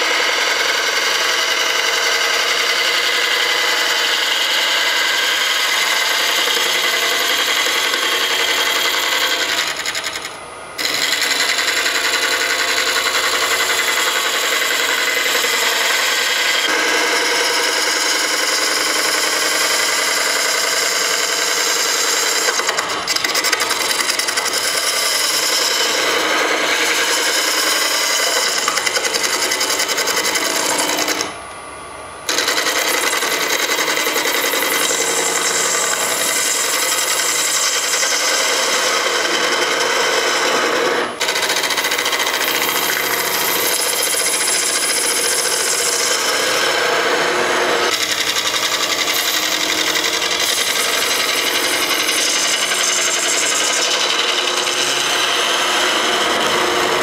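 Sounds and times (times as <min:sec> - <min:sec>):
scraper cutting wood on lathe: 0:00.0 - 0:31.4, 0:32.3 - 0:57.0
lathe running hum: 0:00.0 - 0:57.0.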